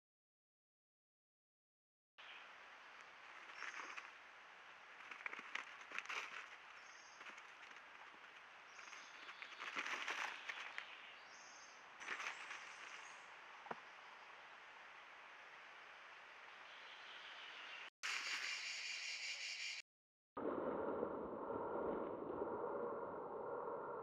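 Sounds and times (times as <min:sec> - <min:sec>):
rabbits rustling dry leaves: 0:02.8 - 0:13.4.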